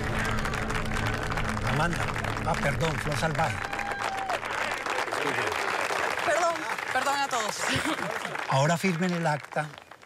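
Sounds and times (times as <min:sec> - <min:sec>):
crowd applauding: 0:00.0 - 0:10.0.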